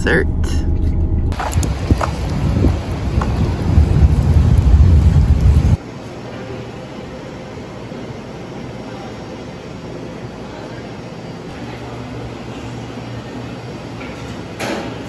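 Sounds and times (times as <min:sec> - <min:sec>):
wind buffeting microphone: 0:01.3 - 0:05.8.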